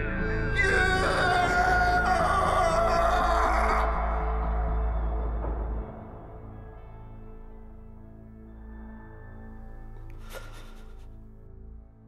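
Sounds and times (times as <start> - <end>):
dark ambient drone tones: 0.0 - 11.8.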